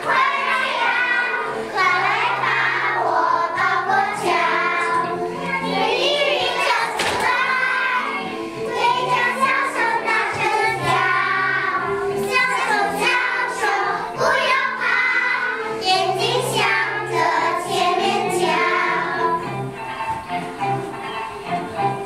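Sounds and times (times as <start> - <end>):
children singing in unison: 0.0 - 19.7
instrumental music: 0.0 - 22.0.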